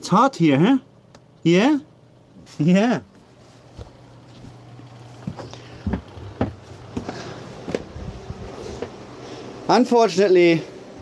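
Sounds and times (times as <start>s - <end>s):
low steady hum: 0.0s - 11.0s
footsteps: 2.4s - 9.0s.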